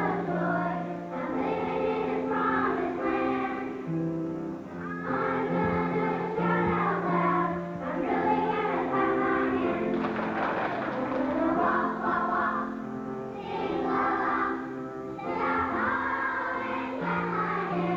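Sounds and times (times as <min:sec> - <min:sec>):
children's choir singing: 0:00.0 - 0:17.9.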